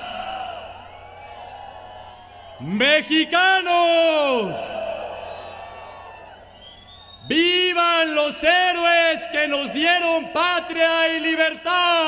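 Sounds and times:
man shouting over public address: 2.6 - 5.0, 7.2 - 12.0.

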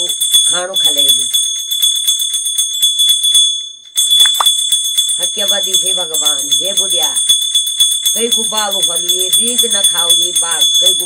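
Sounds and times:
small bells jingling: 0.0 - 11.0
high ringing tone: 4.2 - 4.6.

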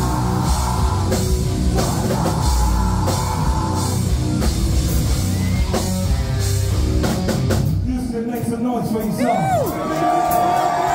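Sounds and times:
distorted guitar: 0.0 - 7.8
bass guitar: 0.0 - 8.5
pounding drum kit: 0.0 - 10.9.

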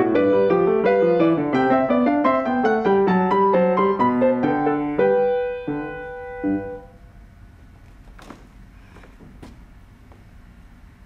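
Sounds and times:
grand piano playing: 0.0 - 7.0
faint room noise: 0.0 - 11.0
soft knocks: 7.9 - 10.3.

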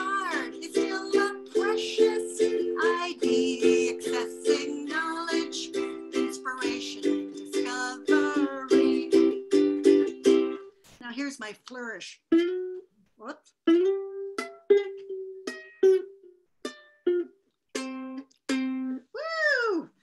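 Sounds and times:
woman singing: 0.0 - 9.5
ukulele chords strummed: 0.0 - 10.7, 12.3 - 12.9, 13.6 - 19.1.

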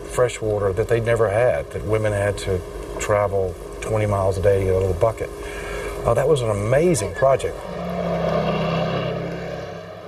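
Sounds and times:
low engine-like hum: 4.8 - 10.0.

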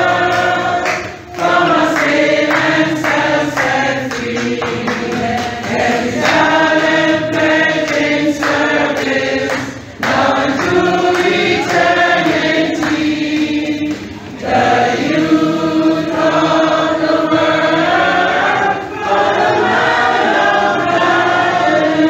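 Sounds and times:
group of voices singing: 0.0 - 22.0.

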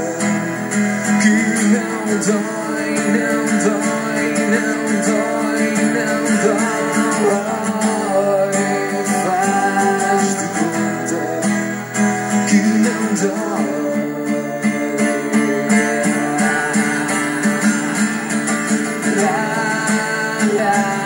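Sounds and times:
acoustic and electric guitars: 0.0 - 21.0.

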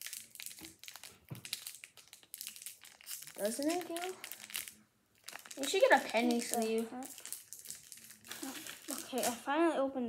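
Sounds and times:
foil wrapper crinkling: 0.0 - 9.4.

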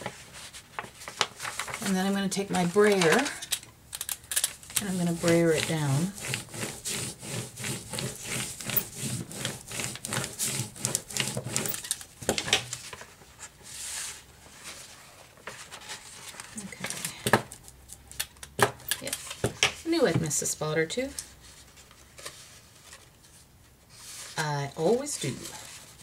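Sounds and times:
paper handling: 0.0 - 19.5
rubber roller rumbling on envelope: 4.7 - 17.0.

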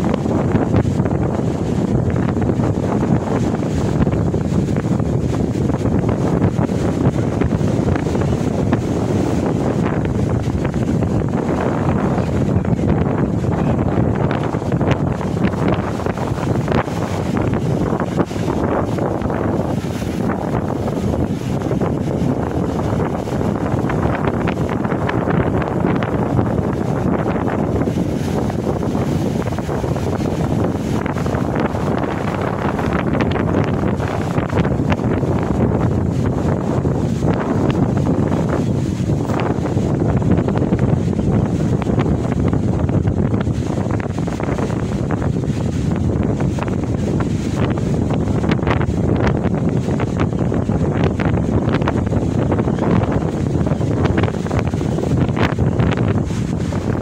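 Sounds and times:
sea surf breaking: 0.0 - 57.0
wind buffeting microphone: 0.0 - 57.0.

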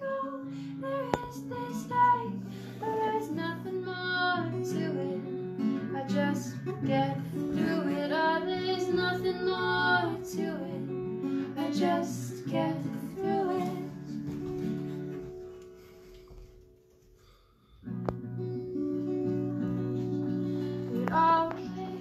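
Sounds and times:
woman singing: 0.0 - 14.3, 19.8 - 22.0
acoustic guitar: 0.0 - 22.0.

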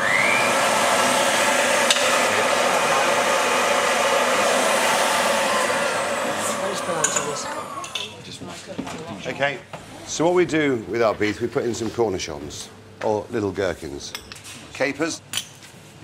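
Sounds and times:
electric meat mincer running: 0.0 - 8.0.

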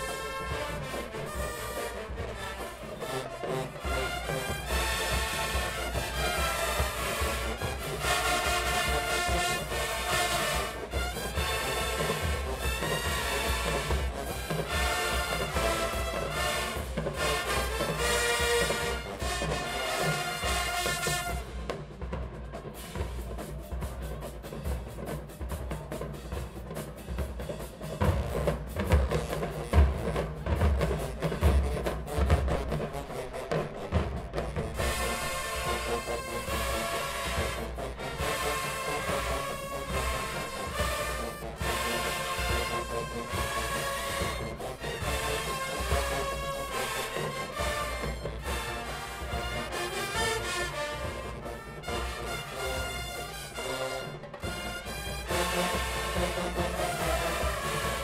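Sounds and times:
drumline playing: 0.0 - 58.0
marching band brass: 0.0 - 58.0.

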